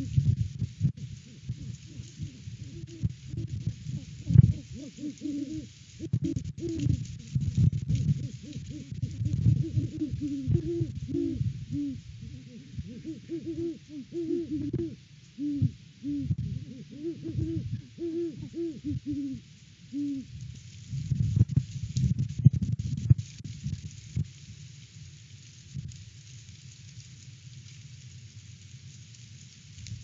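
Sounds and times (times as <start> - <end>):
wind rumbling on microphone: 0.0 - 19.5, 20.2 - 30.0
owls hooting: 1.2 - 7.4, 8.1 - 20.3.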